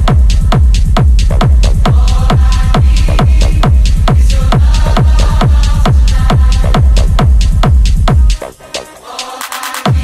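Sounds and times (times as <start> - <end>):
fast kick drum: 0.0 - 8.6.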